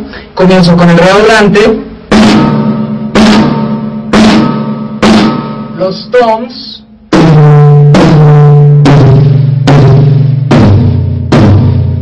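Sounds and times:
snare drum hits ringing: 0:02.1 - 0:06.2, 0:07.1 - 0:12.0.

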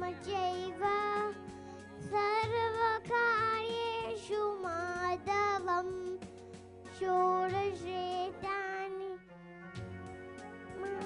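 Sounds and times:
girl singing into microphone: 0:00.0 - 0:09.3.

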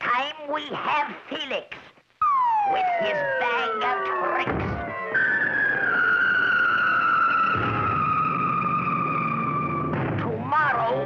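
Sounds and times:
descending cartoon whistle: 0:02.2 - 0:10.0.

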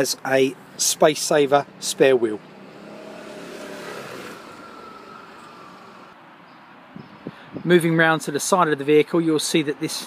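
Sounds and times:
car driving past: 0:01.6 - 0:06.2.

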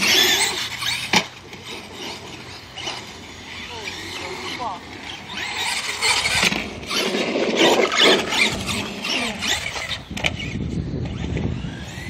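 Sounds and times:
rc truck motor whine: 0:00.0 - 0:12.0
tyre and drivetrain noise: 0:00.0 - 0:12.0.

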